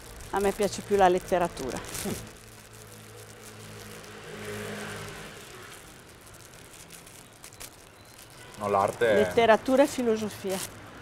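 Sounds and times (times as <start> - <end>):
car driving past: 3.1 - 5.9.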